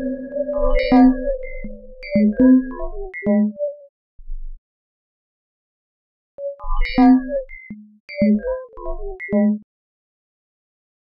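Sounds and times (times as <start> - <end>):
short high synth notes: 0.0 - 2.7
held synthesizer tone: 0.0 - 2.9.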